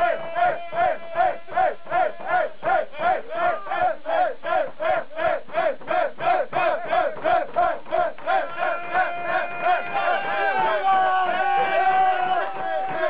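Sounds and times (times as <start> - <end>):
group chanting: 0.0 - 13.0.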